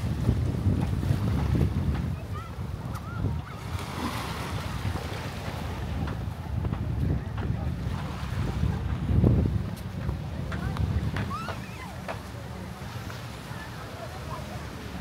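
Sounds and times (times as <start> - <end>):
wind buffeting microphone: 0.0 - 13.6
distant voices of swimmers: 0.0 - 15.0
small waves washing onto sand: 0.0 - 15.0.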